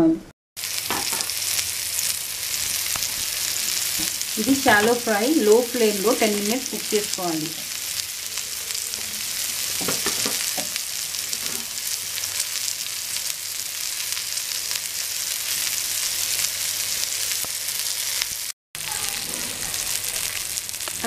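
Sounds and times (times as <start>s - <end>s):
fish sizzling in a pan: 0.6s - 21.0s.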